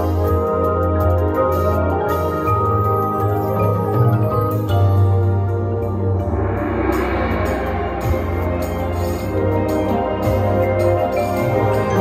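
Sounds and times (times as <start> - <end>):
gong swell: 6.0 - 10.0.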